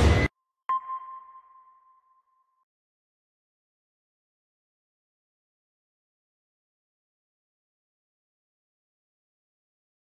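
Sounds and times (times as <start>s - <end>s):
electronic ping: 0.0s - 2.6s.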